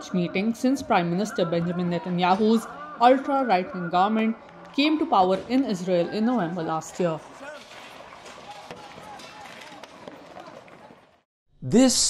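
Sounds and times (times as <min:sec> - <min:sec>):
distant voices calling out: 0:00.0 - 0:10.7.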